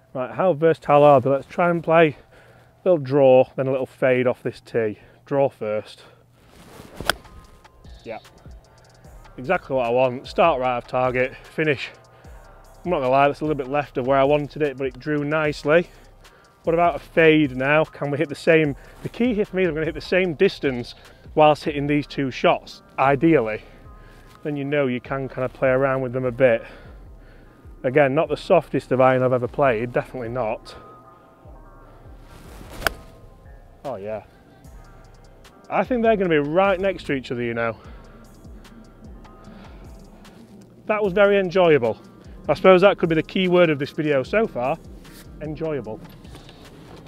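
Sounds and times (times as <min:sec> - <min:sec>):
quiet background music: 0:00.0 - 0:47.0
golf club swish: 0:06.4 - 0:07.8, 0:32.2 - 0:33.4, 0:45.0 - 0:45.3
golf club striking ball: 0:07.0 - 0:07.8, 0:32.7 - 0:33.3.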